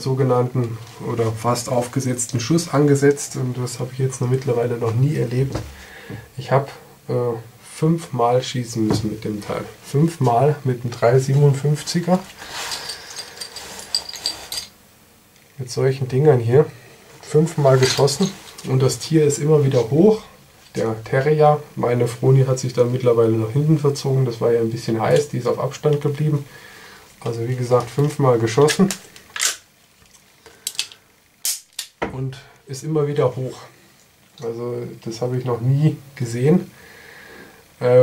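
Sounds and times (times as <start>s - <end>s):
rustling hiss: 8.1s - 29.3s.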